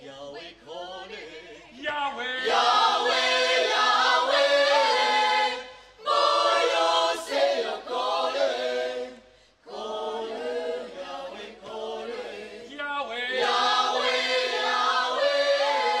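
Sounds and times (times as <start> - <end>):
choir singing a cappella: 0.0 - 16.0.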